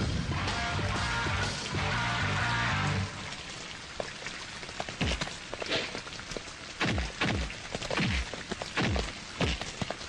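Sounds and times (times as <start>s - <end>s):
rain-like patter: 0.0s - 10.0s.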